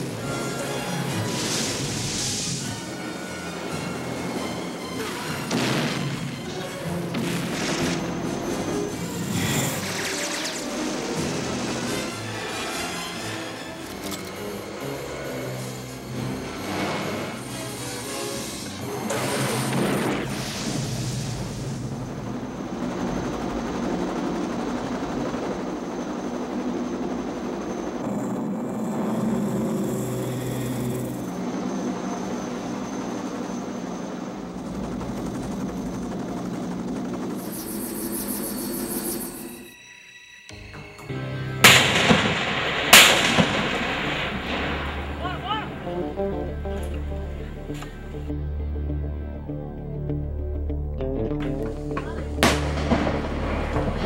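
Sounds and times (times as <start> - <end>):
loud blasts: 0.0 - 12.5, 41.6 - 47.5, 52.3 - 54.0
action film soundtrack music: 0.0 - 54.0
gunfire: 5.5 - 6.4, 7.1 - 8.3, 41.6 - 45.4, 52.4 - 54.0.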